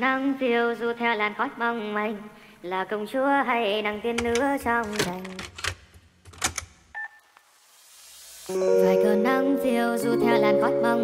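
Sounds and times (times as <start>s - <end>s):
sped-up pop song with singing: 0.0s - 5.4s, 8.5s - 11.0s.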